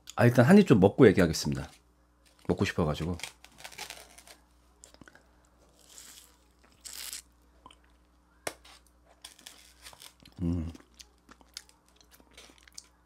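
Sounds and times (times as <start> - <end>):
person chewing soft food: 3.6 - 8.1, 9.1 - 13.0.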